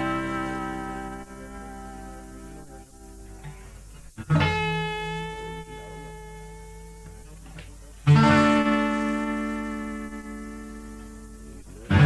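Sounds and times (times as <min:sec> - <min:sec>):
steady low hum: 0:00.0 - 0:12.0
guitar strings ringing: 0:08.0 - 0:12.0.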